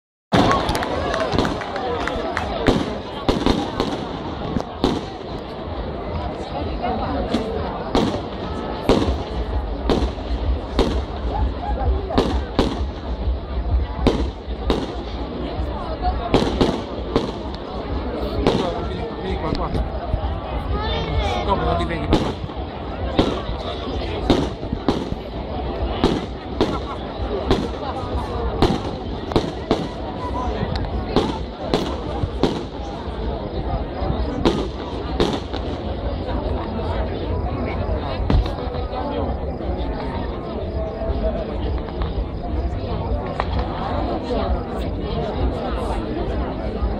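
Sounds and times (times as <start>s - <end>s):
fireworks bursting with sharp bangs: 0.3s - 37.2s, 38.0s - 44.8s
crowd chatter: 0.3s - 46.9s.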